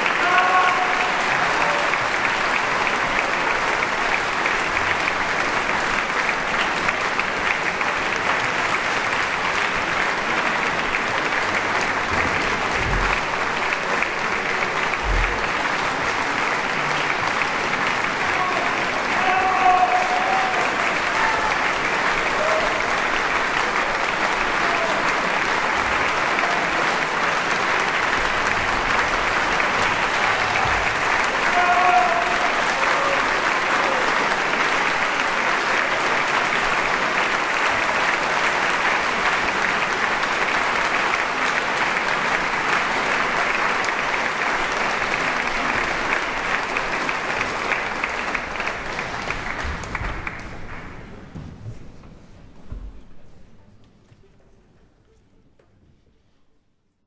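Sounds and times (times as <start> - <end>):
crowd shouts: 0.0 - 2.0, 18.2 - 21.7, 29.8 - 34.2
audience applauding: 0.0 - 51.4.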